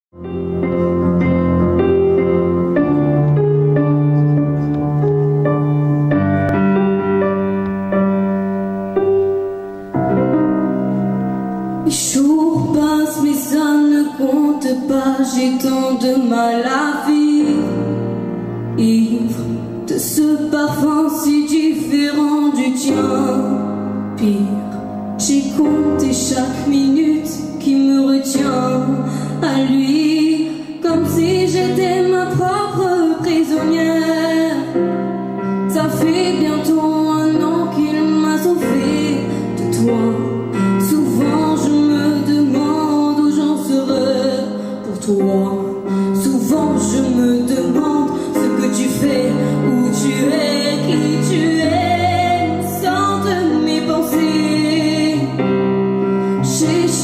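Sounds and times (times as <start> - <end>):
slow piano chords: 0.1 - 57.0
backing track of held chords: 0.2 - 22.0
girl singing with vibrato: 35.7 - 55.4.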